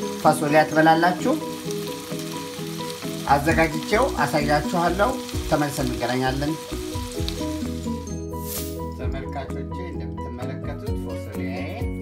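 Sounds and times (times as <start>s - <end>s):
vegetables sizzling in a frying pan: 0.0s - 8.8s
background music with sustained notes: 0.0s - 12.0s.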